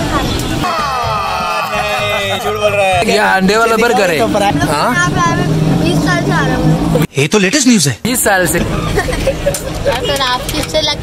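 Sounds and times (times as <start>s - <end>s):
people talking: 0.0s - 8.8s, 9.7s - 11.0s
vehicle engine hum: 0.0s - 11.0s.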